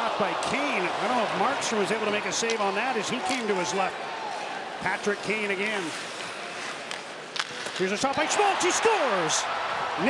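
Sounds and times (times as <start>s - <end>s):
hockey arena crowd noise: 0.0s - 10.0s
sticks striking puck: 2.4s - 3.5s, 5.8s - 9.0s.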